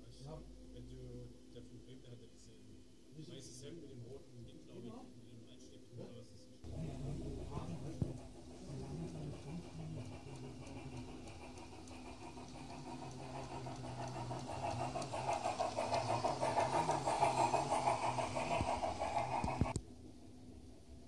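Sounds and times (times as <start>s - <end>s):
model train motor whirring: 6.7s - 19.8s
wheels rattling on rail: 6.7s - 19.8s.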